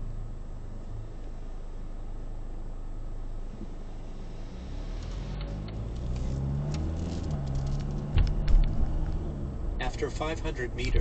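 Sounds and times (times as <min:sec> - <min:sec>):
car engine: 0:00.0 - 0:11.0
road noise inside car: 0:00.0 - 0:11.0.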